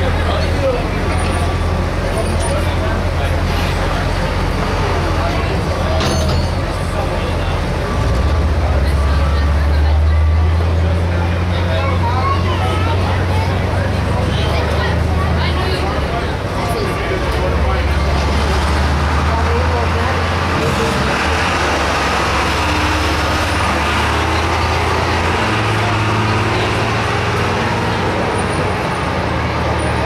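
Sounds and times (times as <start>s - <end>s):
crowd chatter: 0.0s - 30.0s
truck engine idling: 0.0s - 30.0s.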